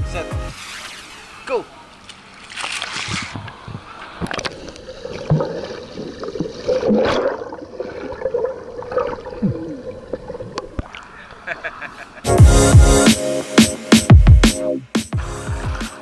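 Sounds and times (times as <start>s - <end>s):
pool water sloshing and splashing: 1.2s - 11.2s.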